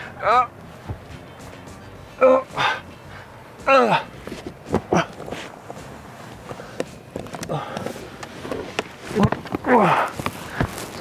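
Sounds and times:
man grunting and groaning: 0:00.0 - 0:00.6, 0:02.2 - 0:02.9, 0:03.6 - 0:04.2, 0:09.2 - 0:10.2
clothes rustling against seats: 0:00.6 - 0:11.0
breathy huff: 0:01.7 - 0:04.2.

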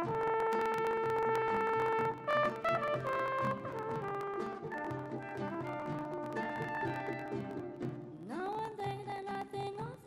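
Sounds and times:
trumpet holding long note: 0:00.0 - 0:06.8.

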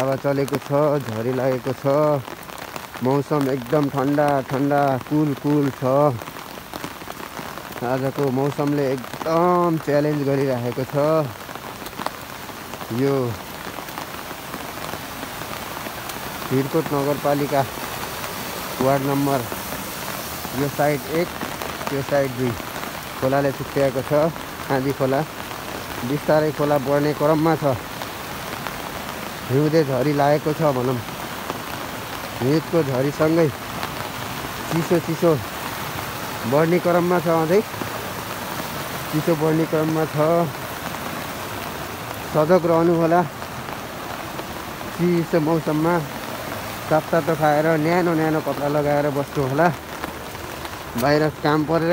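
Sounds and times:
man's voice: 0:00.0 - 0:02.2, 0:03.0 - 0:06.2, 0:07.8 - 0:11.4, 0:12.9 - 0:13.4, 0:16.5 - 0:17.8, 0:18.8 - 0:19.6, 0:20.5 - 0:22.6, 0:23.2 - 0:25.3, 0:26.0 - 0:27.8, 0:29.5 - 0:31.0, 0:32.4 - 0:33.6, 0:34.7 - 0:35.5, 0:36.4 - 0:37.7, 0:39.1 - 0:40.6, 0:42.3 - 0:43.3, 0:44.9 - 0:46.1, 0:46.8 - 0:49.8, 0:50.9 - 0:51.9
steady rain falling: 0:00.0 - 0:51.9.

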